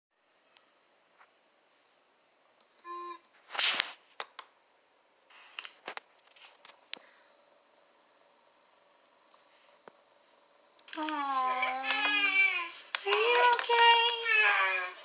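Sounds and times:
faint high whine: 0.2 - 15.0
brief tone: 2.8 - 3.3.

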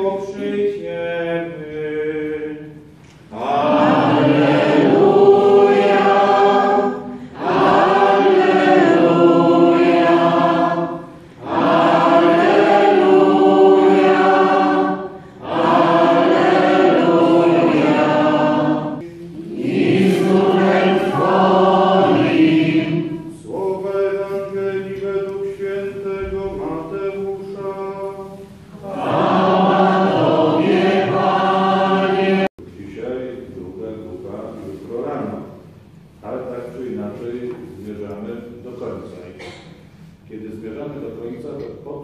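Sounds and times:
congregation singing a chant: 0.0 - 35.7.

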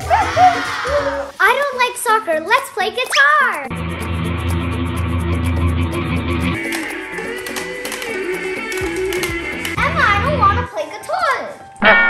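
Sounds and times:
guitar music: 3.5 - 10.7, 11.8 - 12.0.

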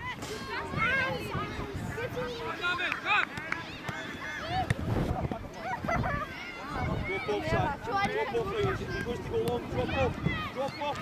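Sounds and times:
children shouting: 5.6 - 11.0.

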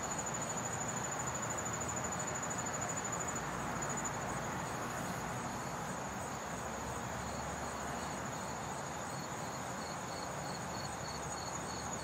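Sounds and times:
background hiss: 0.0 - 12.0
lower cricket chirp: 0.0 - 12.0.

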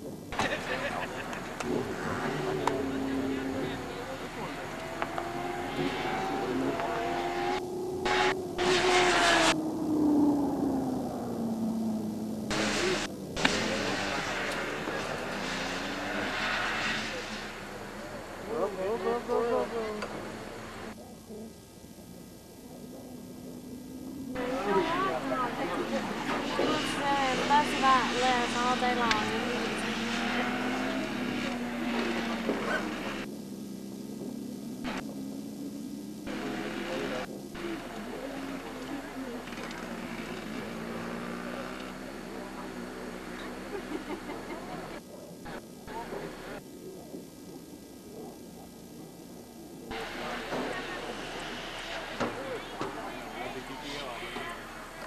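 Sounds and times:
motorcycle engines racing: 0.0 - 55.0.

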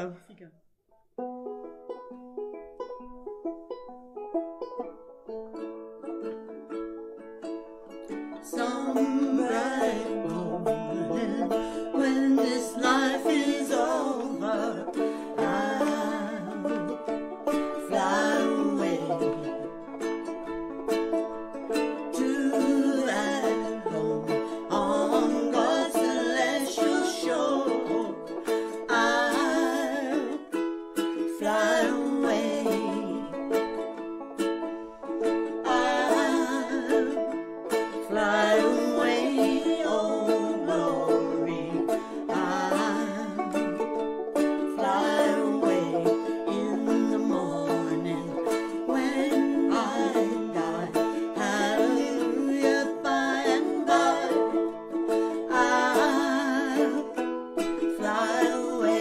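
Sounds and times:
banjo and ukulele playing: 1.0 - 59.0
women singing: 8.1 - 19.8, 21.7 - 33.8, 35.3 - 59.0.

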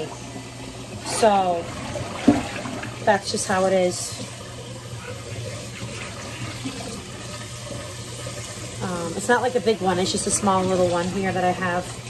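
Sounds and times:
tap running into sink: 1.9 - 3.0.

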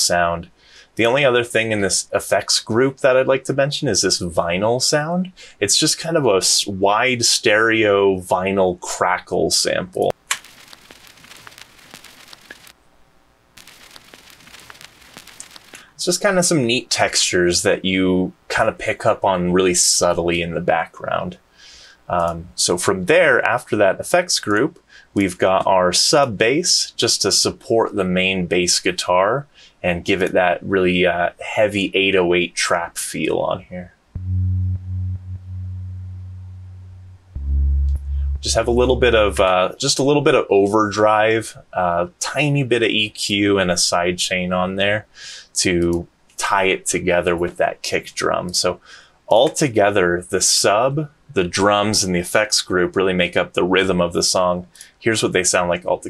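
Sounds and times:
vinyl crackle with pops: 10.0 - 16.2
sub bass synth line: 34.2 - 39.6.

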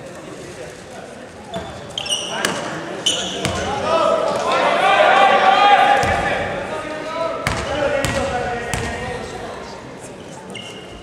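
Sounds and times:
voices in large hall: 0.0 - 11.0
sneaker squeaks on gym floor: 1.5 - 3.7, 10.2 - 11.0
people shouting: 3.8 - 6.5
basketball bouncing: 7.4 - 9.0.

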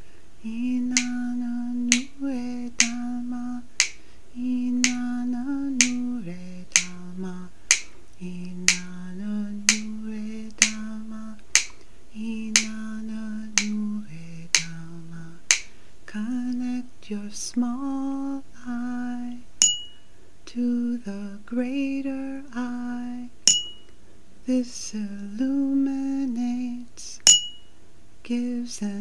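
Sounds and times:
wordless vocal melody: 0.0 - 19.6, 20.4 - 23.5, 24.4 - 27.3
finger snaps: 0.8 - 1.2, 1.8 - 4.0, 4.7 - 6.1, 6.7 - 7.0, 7.7 - 9.0, 9.6 - 11.9, 12.5 - 12.9, 13.5 - 13.8, 14.5 - 14.8.

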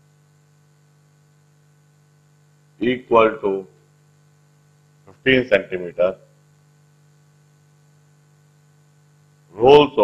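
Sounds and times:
electrical hum: 0.0 - 10.0.

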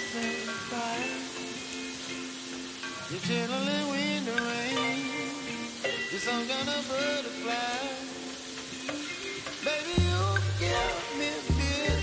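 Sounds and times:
background music with singing: 0.0 - 12.0
meat sizzling in oil: 0.0 - 12.0.

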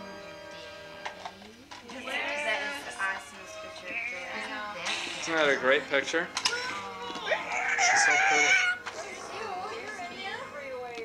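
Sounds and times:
quiet voices: 1.3 - 11.0
high drawn-out vocal cry: 7.2 - 8.8.

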